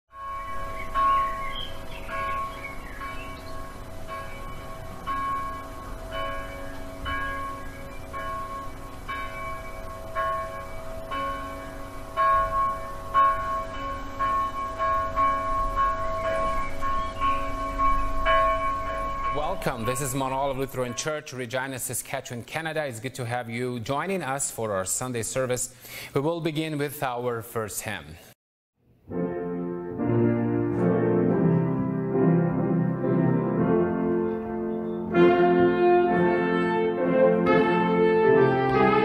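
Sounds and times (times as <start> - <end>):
church bell tolling: 0.1 - 22.0, 30.0 - 39.0.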